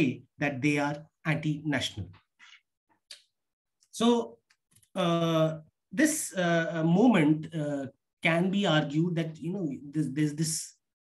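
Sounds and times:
man speaking: 0:00.0 - 0:02.2, 0:05.0 - 0:11.0.

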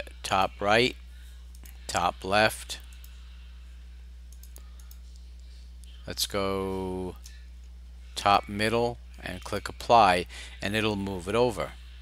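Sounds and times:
low electrical hum: 0:00.0 - 0:12.0
computer mouse clicks: 0:04.3 - 0:05.3.

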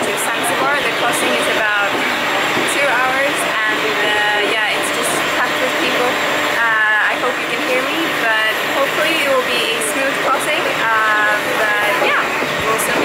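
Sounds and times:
woman talking: 0:00.0 - 0:02.0, 0:02.6 - 0:13.0
wind rushing on microphone: 0:11.6 - 0:13.0.

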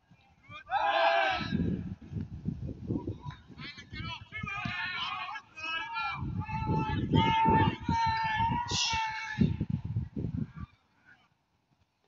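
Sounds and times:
wind rumbling on microphone: 0:00.0 - 0:10.8
person shouting: 0:04.5 - 0:09.6.

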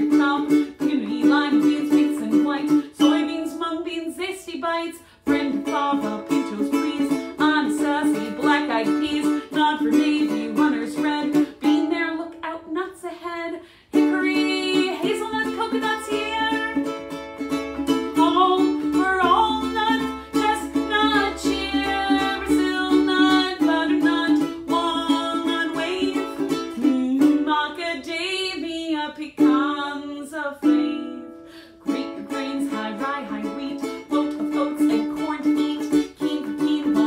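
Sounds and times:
ukulele strumming: 0:00.0 - 0:37.0
woman singing: 0:00.0 - 0:37.0.

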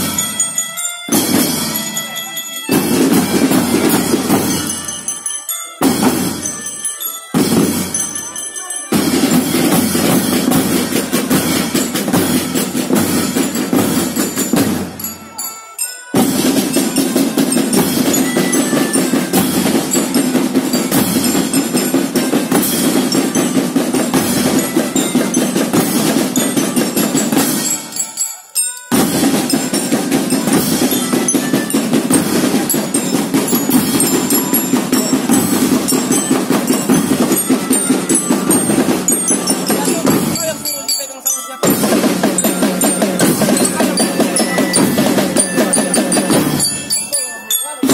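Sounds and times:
marching drums playing fast beat: 0:00.0 - 0:05.2, 0:05.8 - 0:15.5, 0:16.1 - 0:47.9
bell lyre notes: 0:00.0 - 0:47.9.

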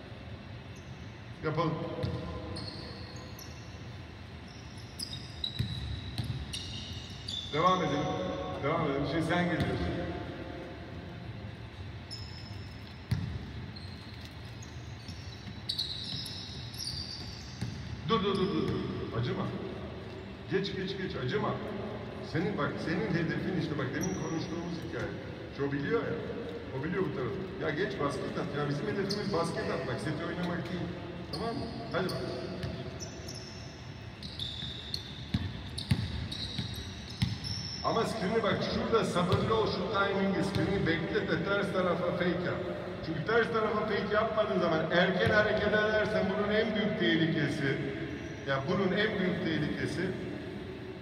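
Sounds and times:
basketball bouncing on hardwood: 0:02.0 - 0:02.2, 0:13.1 - 0:13.4
shoes squeaking on floor: 0:02.0 - 0:03.8, 0:04.4 - 0:07.9, 0:12.1 - 0:19.0, 0:28.8 - 0:29.8, 0:31.3 - 0:38.9.

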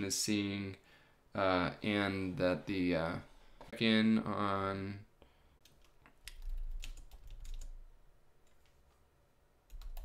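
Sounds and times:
computer keyboard typing: 0:05.6 - 0:07.8, 0:09.7 - 0:10.0.

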